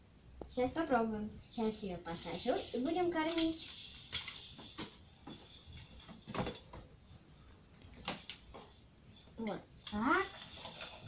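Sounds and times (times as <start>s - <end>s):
plastic toys knocking and clicking: 1.6s - 6.9s, 7.9s - 11.0s.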